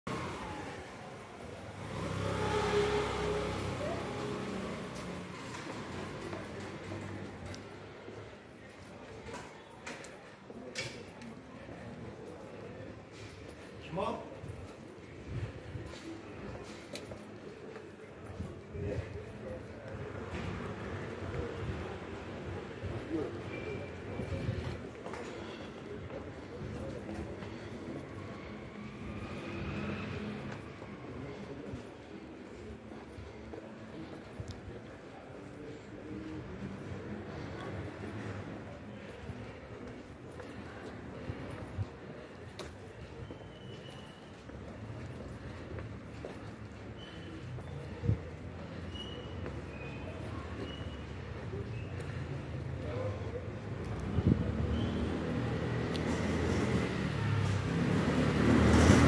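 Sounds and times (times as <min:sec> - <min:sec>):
street background noise: 0:00.0 - 0:59.0
low traffic rumble: 0:00.1 - 0:08.7, 0:44.4 - 0:59.0
car engine driving by: 0:01.6 - 0:07.3, 0:53.9 - 0:59.0.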